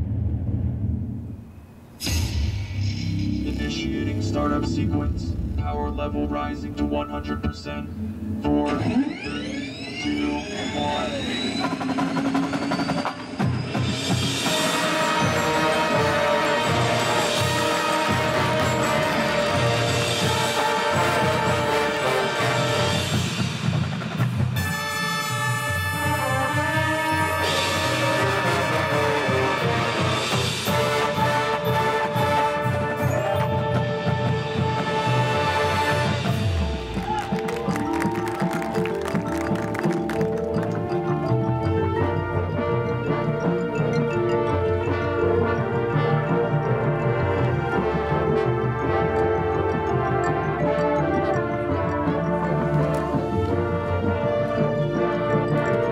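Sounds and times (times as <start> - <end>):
marching band playing: 3.0 - 55.9
brass holding chords: 14.4 - 23.4, 24.6 - 55.9.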